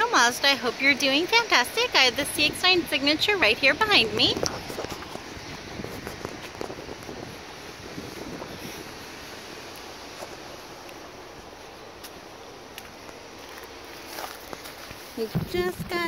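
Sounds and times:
wind hiss on microphone: 0.1s - 16.0s.

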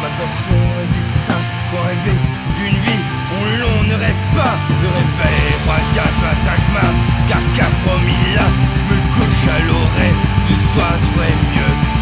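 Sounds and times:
guitar with sliding bending notes: 0.0s - 12.0s
drum hits: 0.5s - 12.0s.

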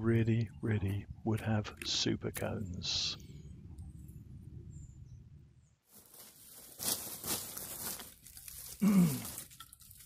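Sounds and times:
low background rumble: 0.0s - 5.8s
plastic sack rustling: 5.9s - 10.0s.

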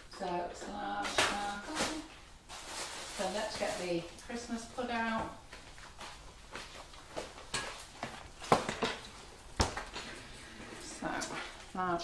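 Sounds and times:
kitchen items clattering on worktop: 0.1s - 4.0s, 6.7s - 11.9s.

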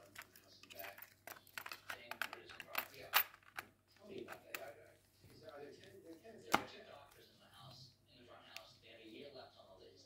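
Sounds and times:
faint handling noise: 0.0s - 7.8s.

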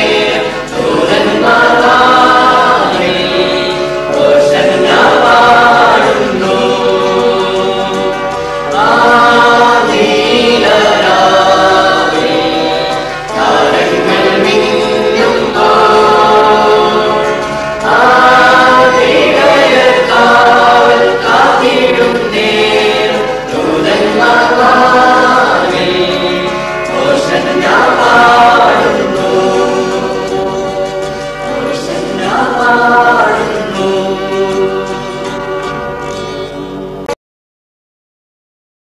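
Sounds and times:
choir singing a carol: 0.0s - 37.1s.

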